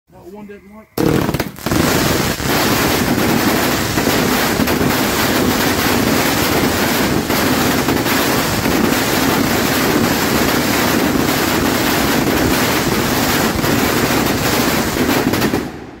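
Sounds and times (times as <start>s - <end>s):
fireworks crackling: 1.0s - 16.0s.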